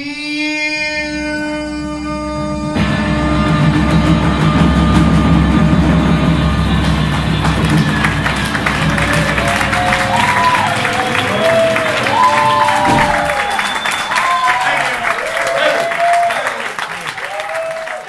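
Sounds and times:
audience applause and cheering: 5.8 - 18.0
audience whooping: 6.8 - 18.0.

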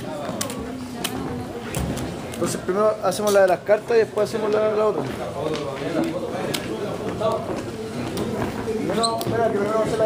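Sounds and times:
low background talk: 0.0 - 10.0.

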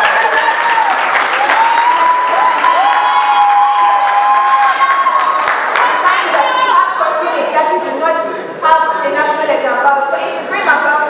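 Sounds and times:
audience applauding and cheering: 0.0 - 6.7.

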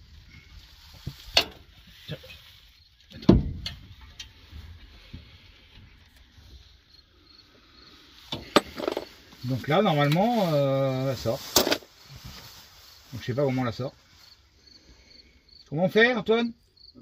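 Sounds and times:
faint steady background noise: 0.0 - 17.0
hand tools clicking and knocking: 8.3 - 9.1.

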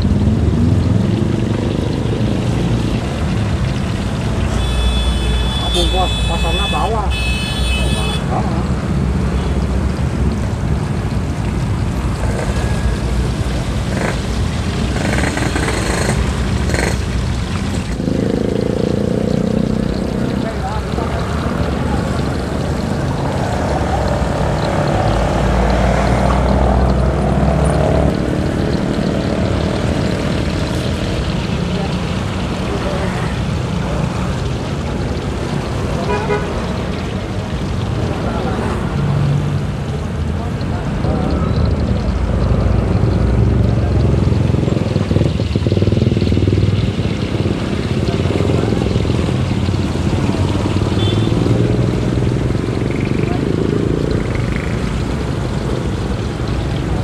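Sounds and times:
egg sizzling in hot oil: 0.0 - 8.2, 8.8 - 57.0
traffic engine rumble: 0.0 - 57.0
car horn toot: 4.6 - 8.3, 36.1 - 36.5, 51.0 - 51.4.

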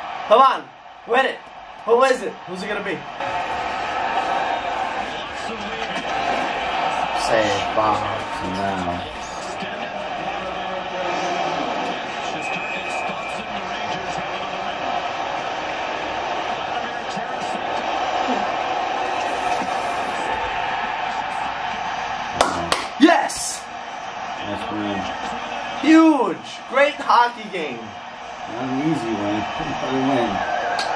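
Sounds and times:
arena crowd noise: 0.0 - 30.9.

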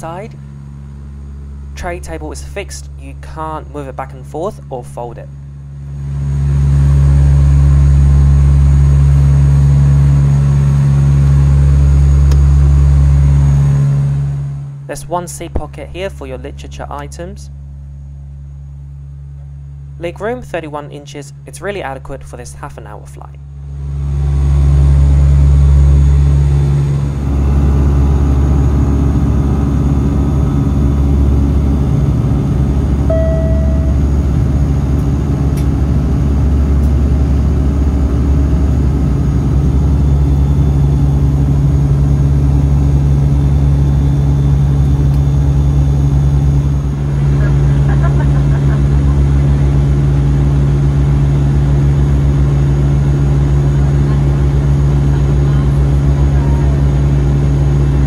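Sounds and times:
aircraft engine drone: 0.0 - 22.1, 23.4 - 58.0.

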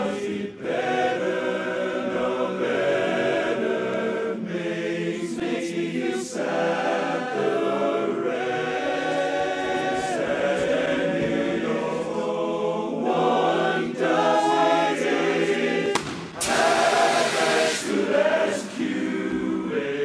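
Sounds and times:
men's chorus singing a cappella: 0.0 - 20.0.

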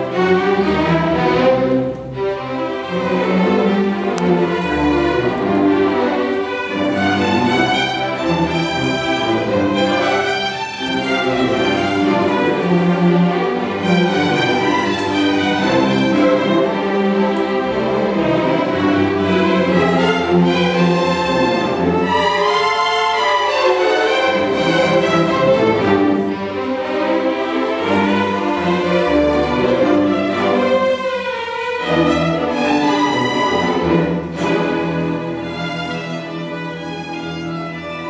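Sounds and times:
string orchestra playing a tango: 0.0 - 38.0.

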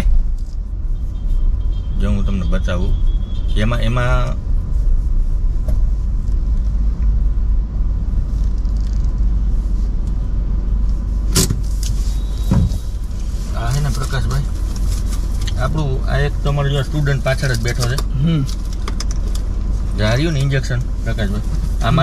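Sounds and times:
car engine rumble and road noise: 0.0 - 22.0.

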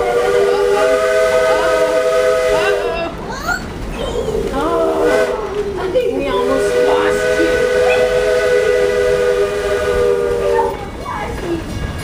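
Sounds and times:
steam locomotive chime whistle: 0.0 - 2.9, 6.4 - 10.8.

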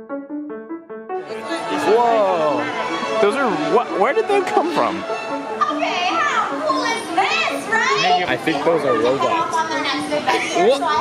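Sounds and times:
children calling and shrieking: 1.3 - 11.0.

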